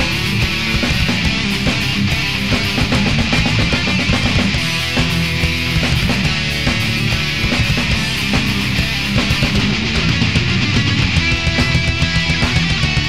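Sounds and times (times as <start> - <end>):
distorted electric guitars: 0.0 - 13.0
fast dense drumming: 0.0 - 13.0.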